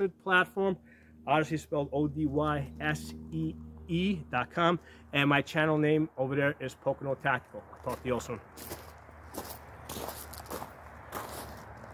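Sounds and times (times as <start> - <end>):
footsteps crunching on gravel: 7.2 - 11.9.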